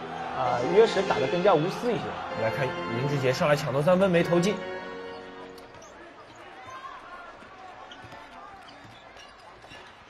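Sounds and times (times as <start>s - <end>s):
arena background noise: 4.3s - 10.0s.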